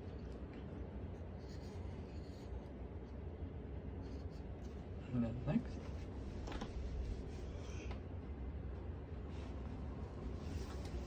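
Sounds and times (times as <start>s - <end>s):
steady low hum: 0.0s - 11.0s
pencil scratching on paper: 1.1s - 2.7s.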